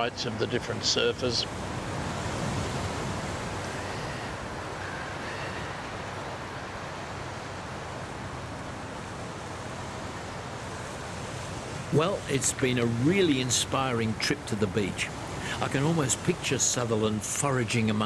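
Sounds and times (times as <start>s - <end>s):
sea surf: 0.0s - 18.0s
wind: 0.0s - 18.0s.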